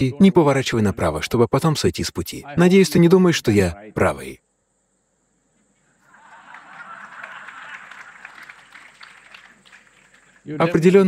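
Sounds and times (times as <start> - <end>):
audience applauding: 6.0 - 11.0.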